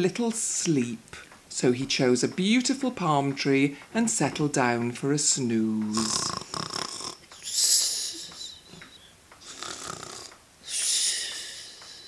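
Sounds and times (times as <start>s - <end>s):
person mock snoring: 5.9s - 8.6s, 9.4s - 11.8s.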